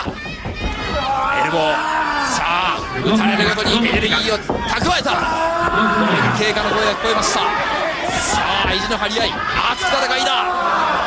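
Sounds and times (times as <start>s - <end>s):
long drawn-out vocal cry: 5.5s - 6.6s.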